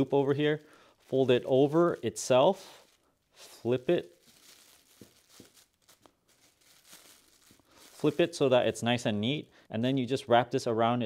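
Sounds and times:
plastic bag crinkling: 0:00.0 - 0:09.4.

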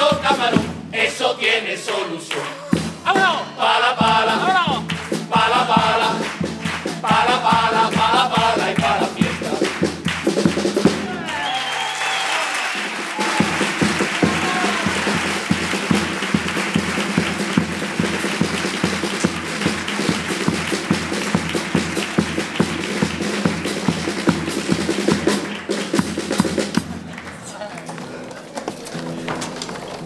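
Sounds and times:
bass drum beat: 0:02.7 - 0:11.3, 0:13.2 - 0:27.1
audience applauding: 0:04.5 - 0:30.0.

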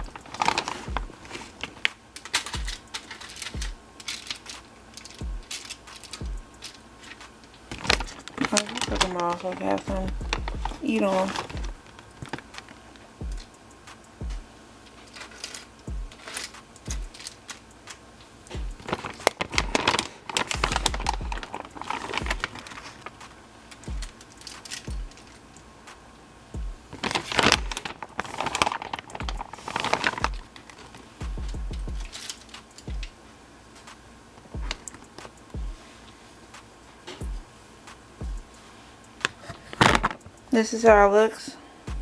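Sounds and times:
short dull bumps: 0:00.0 - 0:01.6, 0:07.7 - 0:12.6, 0:18.5 - 0:22.6, 0:23.9 - 0:24.2, 0:31.2 - 0:32.2
aluminium foil crinkling: 0:00.0 - 0:13.5, 0:14.8 - 0:25.6, 0:26.9 - 0:36.3, 0:39.2 - 0:41.5.

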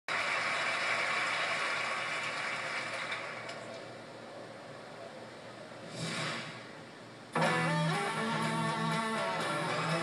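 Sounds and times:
audience applause: 0:00.1 - 0:03.7.

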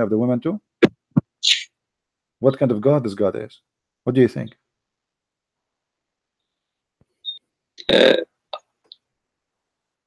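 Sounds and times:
person's short throaty sound: 0:07.8 - 0:08.3.

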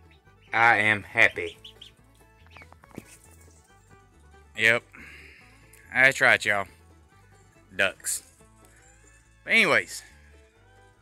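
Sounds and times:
ducklings peeping: 0:00.0 - 0:03.2
faint background music: 0:00.0 - 0:11.0.

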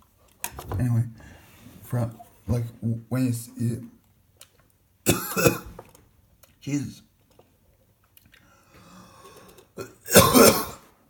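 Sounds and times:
person coughing: 0:05.1 - 0:05.8, 0:09.8 - 0:10.9.

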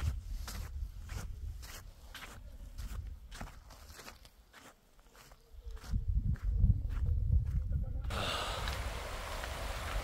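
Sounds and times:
footsteps on sand: 0:00.0 - 0:07.9.

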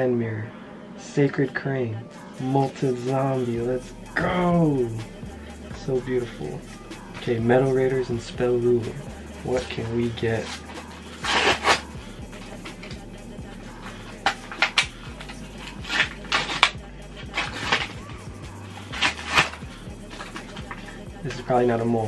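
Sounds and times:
background music: 0:00.0 - 0:22.0
foil wrapper crinkling and tearing: 0:09.7 - 0:11.9, 0:14.0 - 0:18.2, 0:18.8 - 0:21.0.

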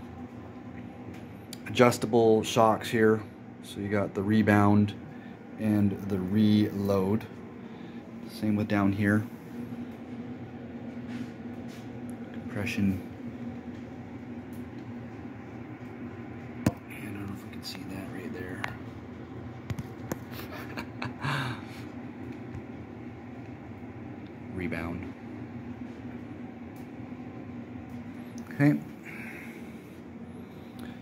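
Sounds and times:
low mechanical hum: 0:00.0 - 0:31.0.

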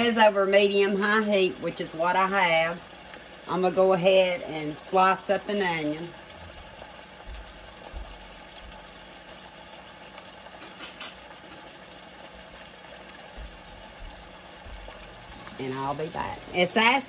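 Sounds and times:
meat sizzling in a pan: 0:00.0 - 0:17.0.

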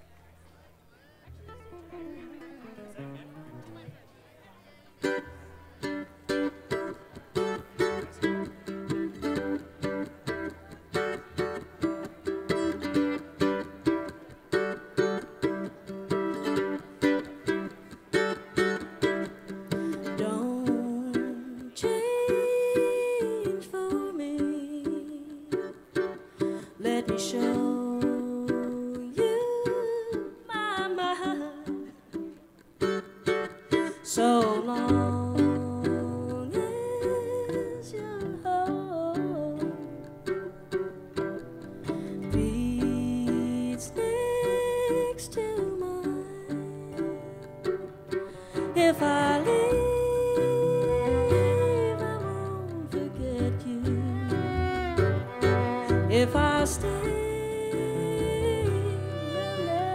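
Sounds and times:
acoustic guitar: 0:00.0 - 0:59.9
mandolin picking: 0:00.0 - 0:59.9
fiddle sliding notes: 0:01.3 - 0:04.0, 0:32.9 - 0:59.9
upright bass: 0:01.3 - 0:04.1, 0:39.2 - 0:59.9.

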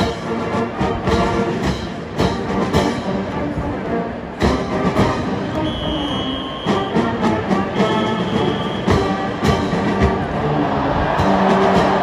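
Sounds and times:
military marching band playing: 0:00.0 - 0:12.0.

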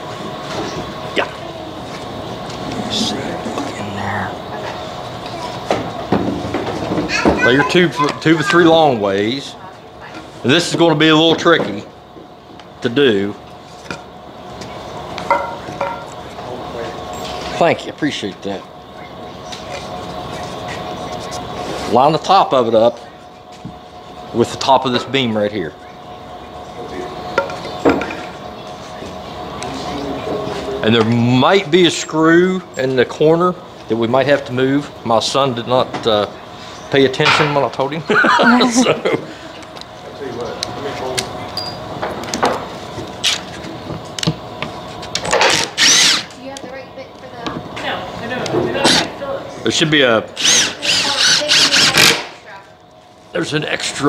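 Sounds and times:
machine hum with held tones: 0:00.0 - 0:48.5
even background noise: 0:00.0 - 0:54.0
power driver motor whine: 0:43.8 - 0:46.4.

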